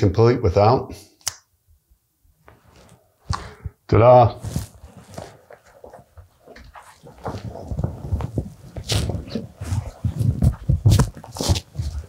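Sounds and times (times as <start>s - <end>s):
coat rustling and knocking: 4.5s - 12.0s.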